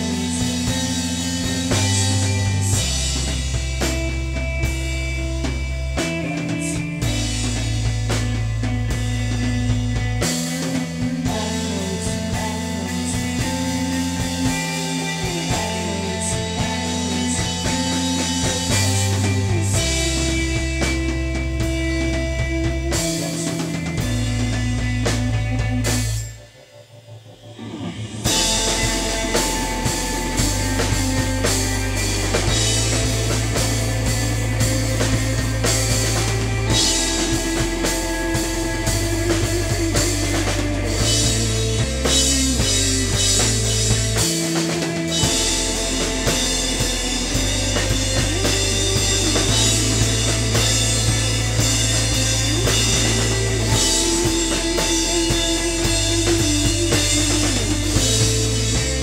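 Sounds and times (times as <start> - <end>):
drum kit with cymbals: 0.0 - 59.0
electric guitar: 0.0 - 59.0
keyboard: 0.0 - 59.0
low bass notes: 0.0 - 59.0.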